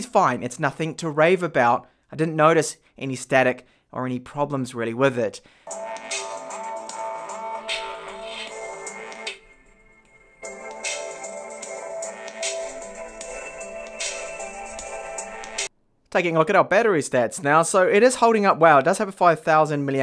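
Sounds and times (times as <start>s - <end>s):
music with a steady beat: 5.7s - 15.7s.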